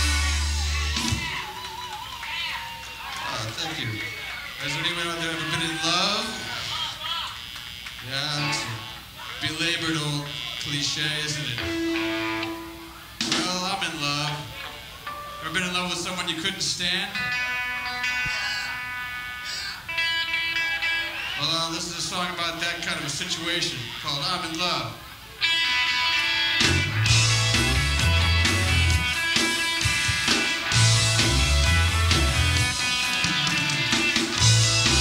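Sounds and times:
audience whooping and yelling: 0:00.0 - 0:09.6
electric guitar sustained note: 0:11.5 - 0:13.1.

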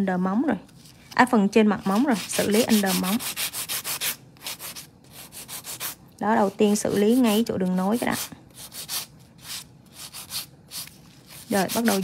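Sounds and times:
nail file rasping on nail: 0:02.0 - 0:06.0, 0:08.0 - 0:12.0.

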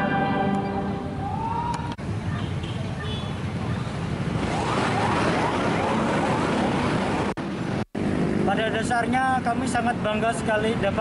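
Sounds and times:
road traffic engines: 0:00.0 - 0:11.0
siren rising sweeps: 0:00.7 - 0:02.0, 0:03.6 - 0:07.2.

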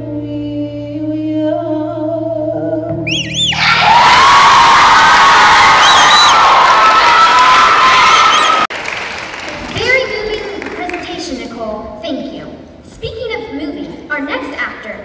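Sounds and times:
crowd noise: 0:03.2 - 0:11.5
audience applause and cheering: 0:03.4 - 0:09.8.

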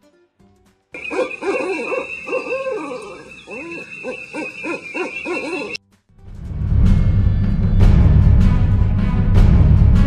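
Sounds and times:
owl hooting: 0:01.0 - 0:05.8.

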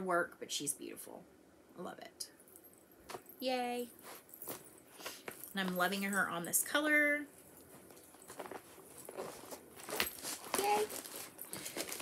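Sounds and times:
faint rustling of handling: 0:02.5 - 0:12.0.

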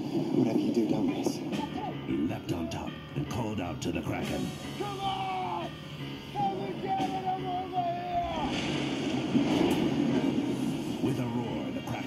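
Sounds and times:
loud churning rush of water: 0:07.2 - 0:11.8.

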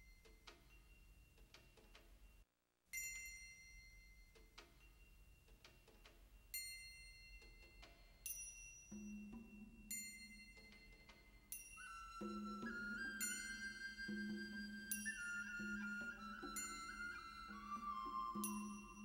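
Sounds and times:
bell-like mallet tones: 0:06.4 - 0:19.0.

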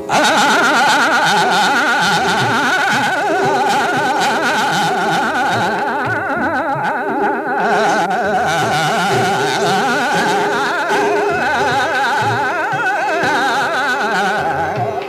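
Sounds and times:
man singing fast passages: 0:00.0 - 0:15.0
tanpura drone: 0:00.0 - 0:15.0.

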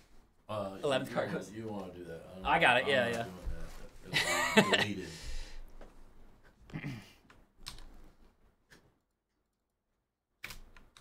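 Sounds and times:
computer keyboard typing: 0:07.6 - 0:08.0, 0:10.4 - 0:11.0.

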